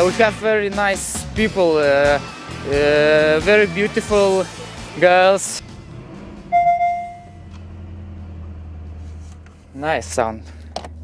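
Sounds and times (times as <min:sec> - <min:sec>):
car engine idling: 0:01.8 - 0:11.0
ringing chime tone: 0:06.5 - 0:07.4.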